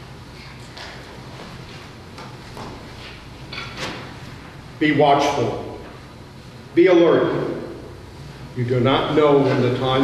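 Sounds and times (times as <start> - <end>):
soft rustling swishes: 0.4 - 4.7
man speaking loudly: 4.8 - 5.8, 6.8 - 7.8, 8.6 - 10.0.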